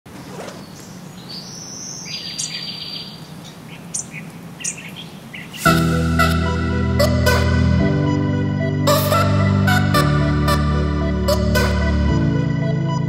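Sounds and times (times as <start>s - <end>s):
songbirds chirping and trilling: 0.1s - 5.7s
loud music: 5.6s - 13.0s.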